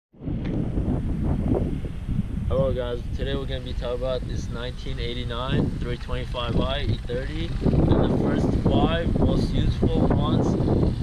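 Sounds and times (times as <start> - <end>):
wind buffeting microphone: 0.2 - 11.0.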